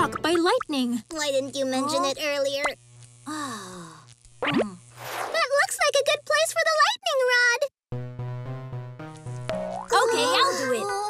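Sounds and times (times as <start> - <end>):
electric spark zap: 0.2 - 5.6
wordless cartoon character voice: 9.9 - 11.0.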